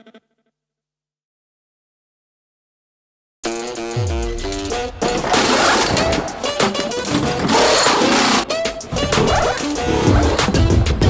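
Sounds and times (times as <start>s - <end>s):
pneumatic wheel guns rattling: 4.5s - 9.6s.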